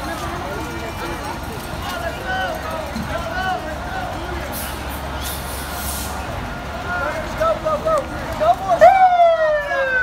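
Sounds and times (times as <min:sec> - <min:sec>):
fire engine siren: 0:05.2 - 0:10.0.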